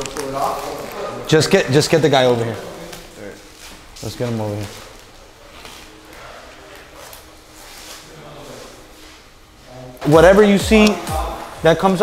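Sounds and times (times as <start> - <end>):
vinyl wrap peeling crinkling: 0.0 - 1.4.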